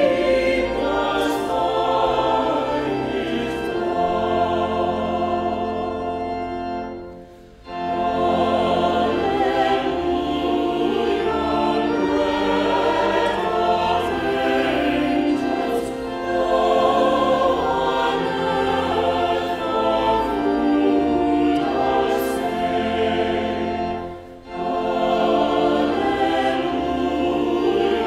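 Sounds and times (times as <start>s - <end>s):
choir singing a hymn: 0.0s - 28.0s
organ accompaniment: 0.0s - 28.0s.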